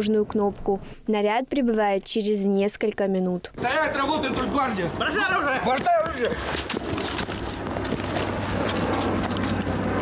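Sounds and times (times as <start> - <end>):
scuffling on grass: 5.8 - 10.0.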